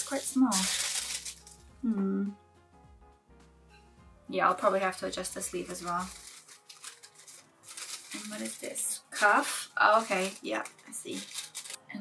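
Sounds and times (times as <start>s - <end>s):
paper rustling and crinkling: 0.0s - 1.6s, 4.6s - 11.8s.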